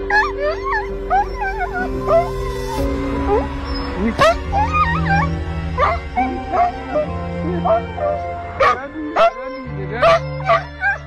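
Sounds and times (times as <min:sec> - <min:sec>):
background music: 0:00.0 - 0:11.0
dog yelping and whining: 0:00.0 - 0:11.0.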